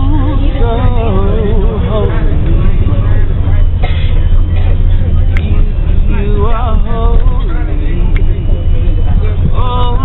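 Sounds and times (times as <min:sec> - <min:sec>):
bus engine and road noise: 0:00.0 - 0:10.0
soft voices: 0:00.0 - 0:10.0.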